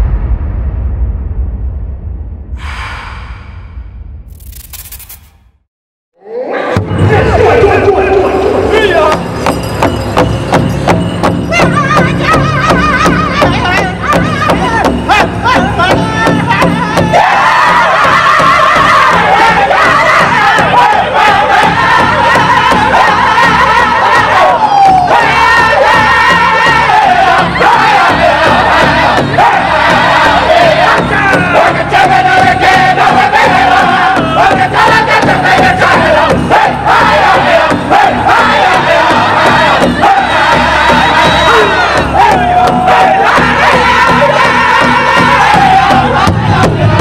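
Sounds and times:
faint big drum beats: 0:09.0 - 0:47.0
group of men singing in unison: 0:11.6 - 0:47.0.

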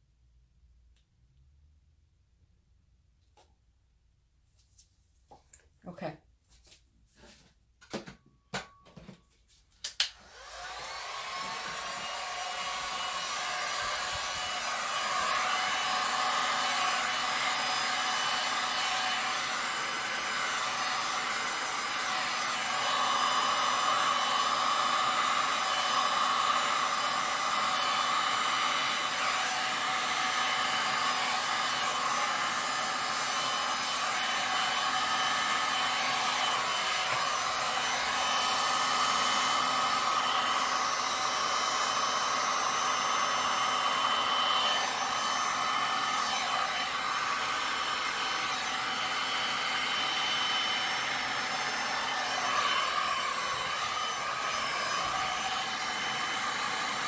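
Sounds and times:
heat gun blowing air: 0:09.8 - 0:57.0.

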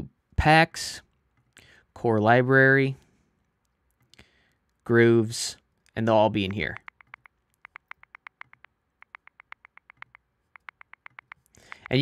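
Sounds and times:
rapid computer clicking: 0:06.4 - 0:12.0.

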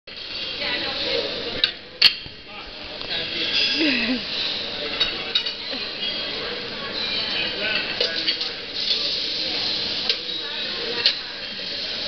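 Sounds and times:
metal pans and utensils clinking: 0:03.3 - 0:06.3, 0:07.0 - 0:11.3.

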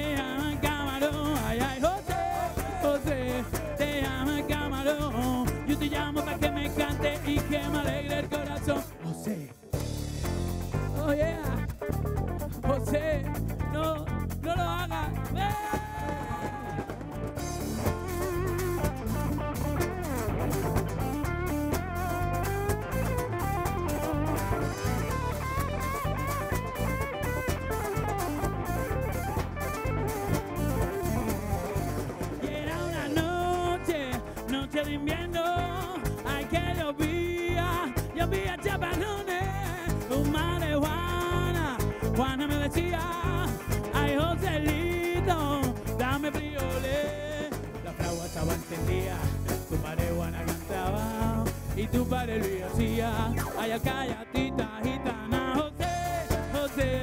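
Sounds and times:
man singing: 0:00.0 - 0:09.8, 0:10.6 - 0:20.7, 0:21.4 - 0:57.0
drum kit steady beat: 0:00.0 - 0:57.0
guitars playing: 0:00.0 - 0:57.0.

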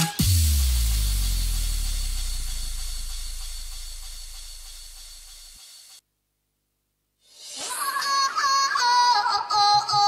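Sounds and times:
deep bass note: 0:00.2 - 0:05.6.

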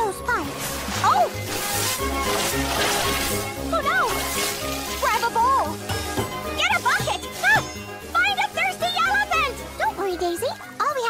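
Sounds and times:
cartoon background music: 0:00.0 - 0:11.0
water spraying hiss: 0:00.4 - 0:05.8.

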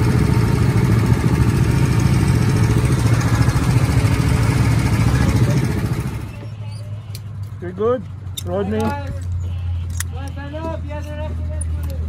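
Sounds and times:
go-kart engines idling: 0:00.0 - 0:12.0
voices talking: 0:03.5 - 0:12.0.

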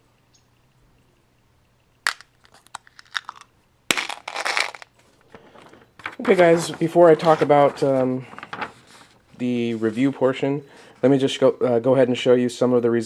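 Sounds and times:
crinkly rustling: 0:02.4 - 0:10.4.

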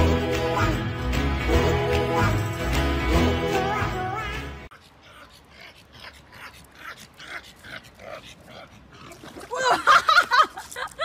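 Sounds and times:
dog panting: 0:04.7 - 0:09.2.

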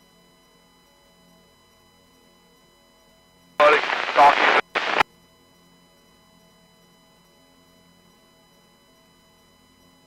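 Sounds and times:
garbled speech over radio: 0:03.6 - 0:05.0
radio click: 0:03.6 - 0:05.0.

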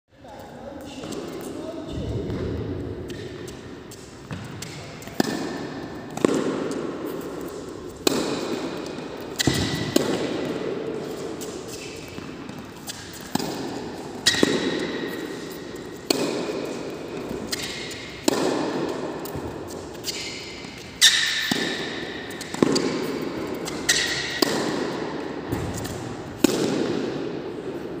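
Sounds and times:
tennis racket hitting ball: 0:02.3 - 0:28.0.

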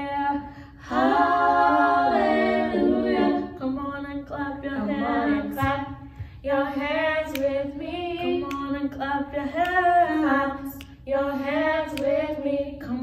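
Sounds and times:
women singing gospel unaccompanied: 0:00.0 - 0:13.0.

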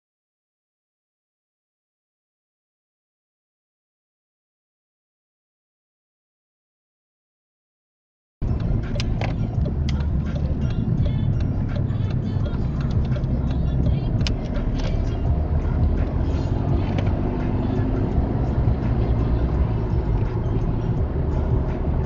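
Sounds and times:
car cabin road noise: 0:08.4 - 0:22.0
light clicks and rattles: 0:08.6 - 0:15.1.

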